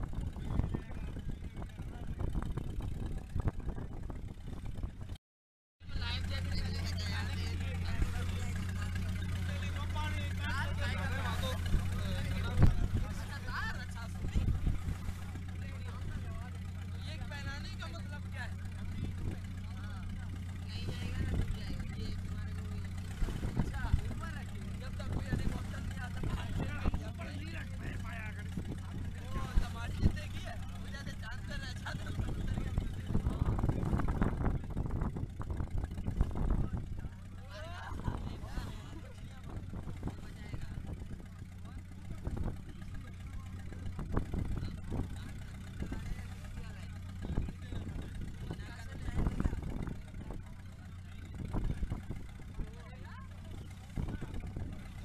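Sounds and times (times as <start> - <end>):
motor engine humming: 0.0 - 5.2, 5.8 - 55.0
people talking: 0.1 - 3.9, 5.8 - 55.0.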